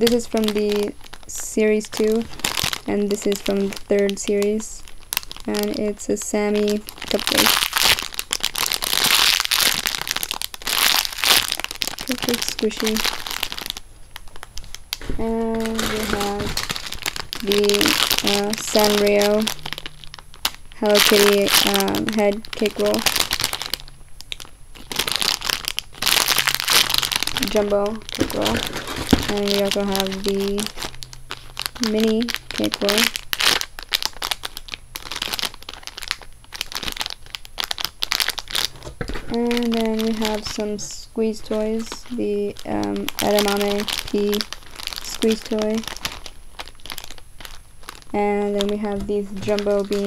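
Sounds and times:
plastic bag crinkling: 0.0s - 50.0s.

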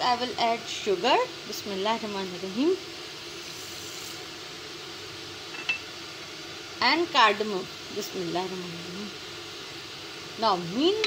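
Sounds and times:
stove hissing: 0.0s - 11.0s
bowl clinking against pan: 5.6s - 5.8s.

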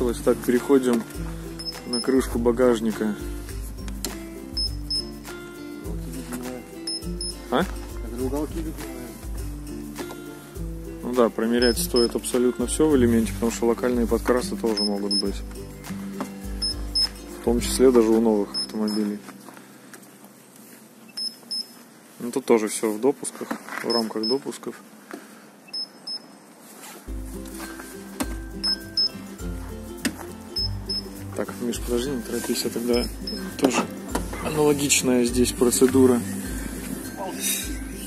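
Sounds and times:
background music with bass line: 0.0s - 19.2s, 27.1s - 38.0s
short high beeps: 1.6s - 2.2s, 6.9s - 7.4s, 11.6s - 12.1s, 21.2s - 21.7s, 25.7s - 26.2s, 28.6s - 29.2s, 30.6s - 31.2s, 33.0s - 33.6s.

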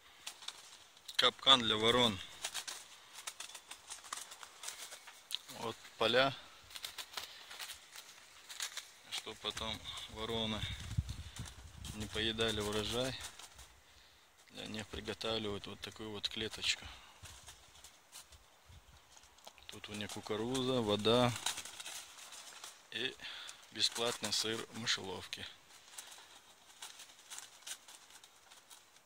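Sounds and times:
crows rustling in a wire cage: 0.0s - 29.0s.

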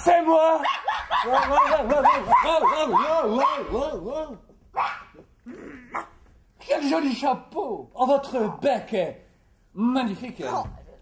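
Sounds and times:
person yelping: 0.6s - 6.2s.

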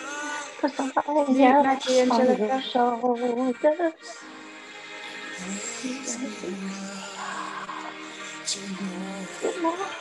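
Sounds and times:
woman singing: 0.0s - 4.2s, 5.4s - 10.0s.

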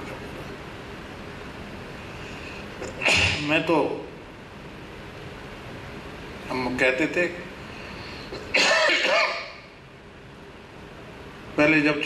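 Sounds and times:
man clearing his throat: 2.8s - 3.5s, 8.4s - 9.6s.

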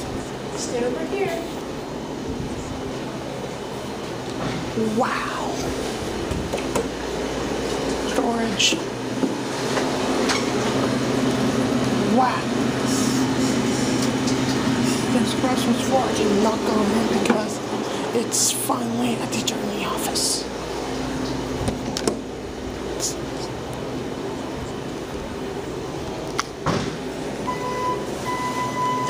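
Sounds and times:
steady mechanical hum: 0.0s - 29.0s.

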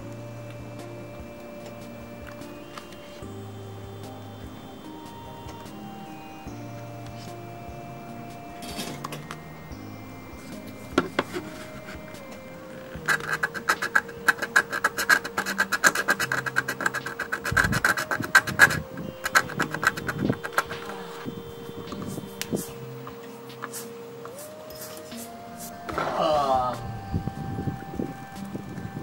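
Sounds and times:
blade scraping circuit board: 1.0s - 25.8s.

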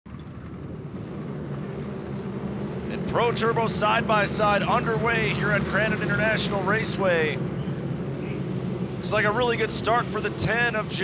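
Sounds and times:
racing vehicles revving: 0.1s - 11.0s.

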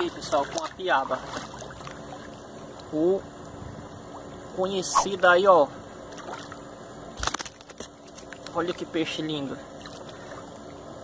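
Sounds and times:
water splashing: 0.0s - 2.4s
shallow water sloshing: 0.0s - 2.7s.

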